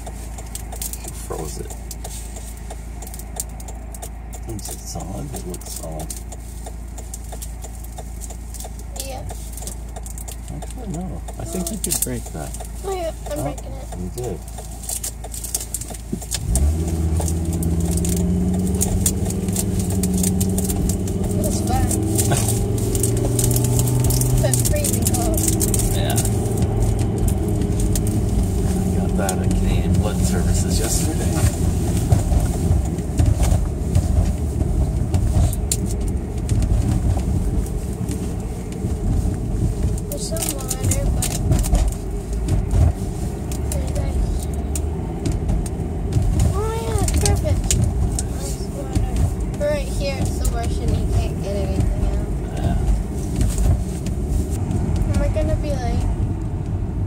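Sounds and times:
car engine hum: 0.0s - 57.0s
road noise inside car: 0.0s - 57.0s.

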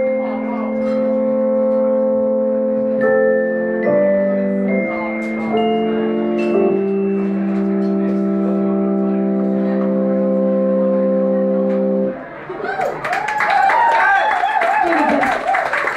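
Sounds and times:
sustained keyboard chord: 0.0s - 12.2s
people cheering: 12.2s - 15.9s
audience clapping: 12.6s - 15.9s.

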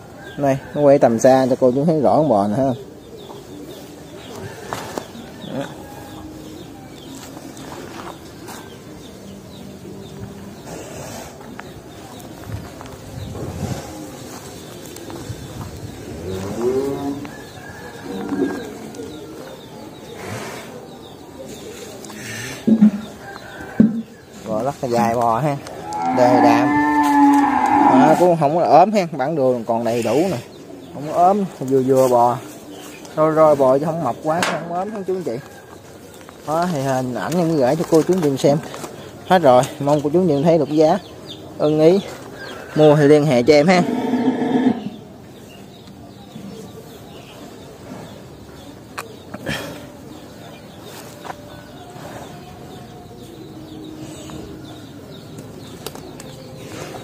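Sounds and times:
farmyard background: 0.0s - 57.0s
small birds chirping: 0.0s - 57.0s
doves cooing: 13.2s - 24.2s, 43.6s - 45.2s
cow mooing: 25.8s - 28.2s, 43.8s - 44.9s.

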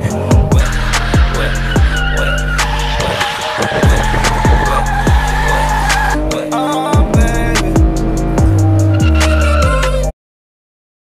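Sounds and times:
music with deep bass drum: 0.2s - 3.0s, 3.7s - 10.1s
tyres squealing: 0.5s - 6.4s, 8.8s - 10.0s.

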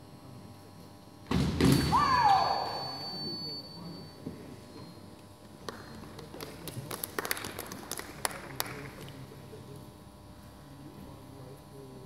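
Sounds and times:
fencer shouting: 1.9s - 3.0s.

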